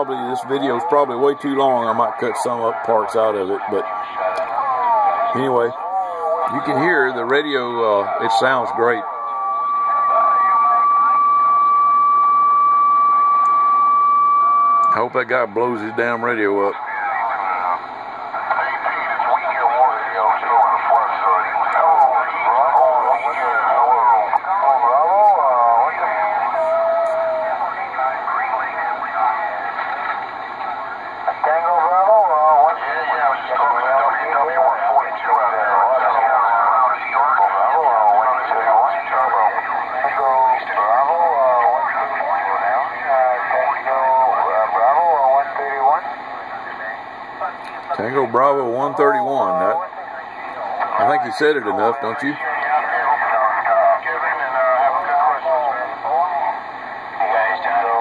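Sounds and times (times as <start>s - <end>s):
voices through radio speaker: 0.0s - 12.6s, 14.7s - 58.0s.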